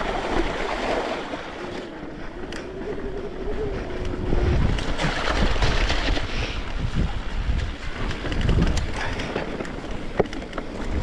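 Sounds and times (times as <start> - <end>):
low rumble of wind: 0.0 - 11.0
wind buffeting microphone: 0.0 - 11.0.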